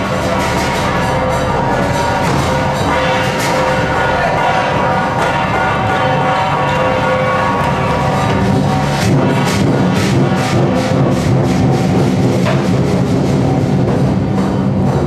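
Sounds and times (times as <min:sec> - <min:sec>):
ringing metallic tones: 0:00.0 - 0:14.8
drumming: 0:00.0 - 0:15.0
sharp percussion strikes: 0:00.0 - 0:15.0.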